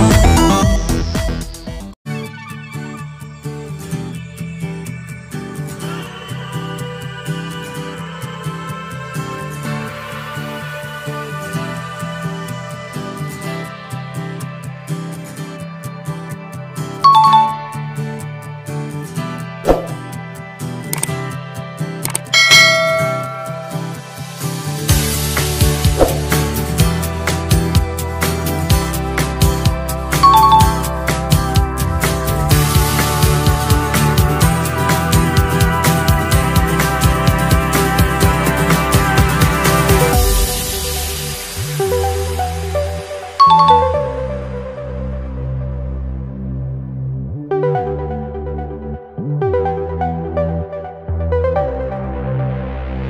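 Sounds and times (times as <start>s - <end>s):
background music: 0.0s - 53.0s
electronic background music: 17.0s - 18.2s, 20.8s - 21.2s, 22.0s - 24.0s, 28.7s - 35.3s, 41.6s - 45.1s
bright bell-like ding: 17.1s - 17.9s, 22.3s - 24.0s, 30.2s - 30.9s, 43.4s - 44.2s
mouse click: 21.0s - 21.2s, 22.0s - 22.3s.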